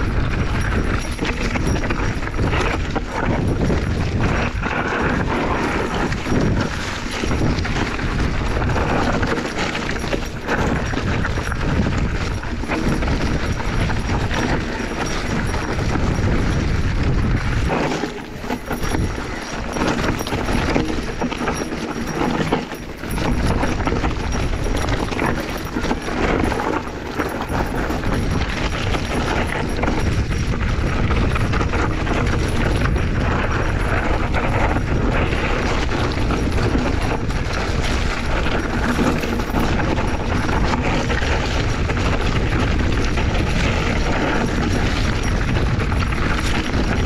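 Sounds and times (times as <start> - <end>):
bike rattling and knocking: 0.0 - 47.0
wind rushing on microphone: 0.0 - 47.0.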